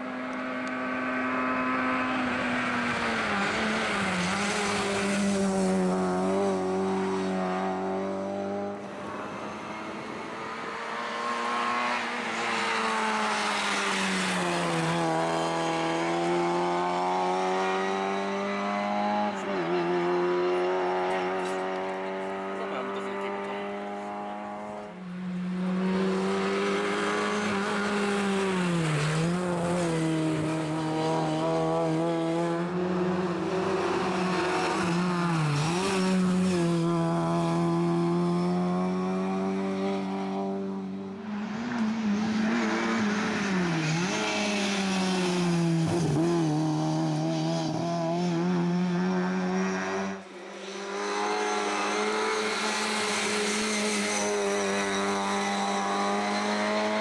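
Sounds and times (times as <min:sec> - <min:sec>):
rally car engine at high revs: 0:00.0 - 0:57.0.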